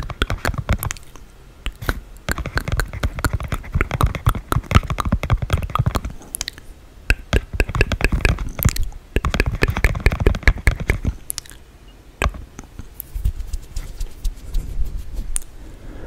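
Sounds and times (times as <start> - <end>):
tongue and lip clicks: 0.0 - 11.6.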